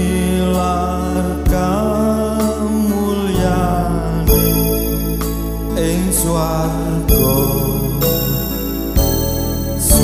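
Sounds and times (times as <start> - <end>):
man singing hymn: 0.0 - 8.9, 9.8 - 10.0
electronic keyboard accompaniment: 0.0 - 10.0.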